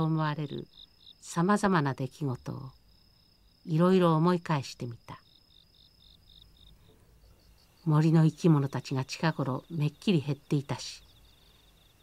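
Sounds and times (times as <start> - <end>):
faint crickets chirping: 0.0 - 12.0.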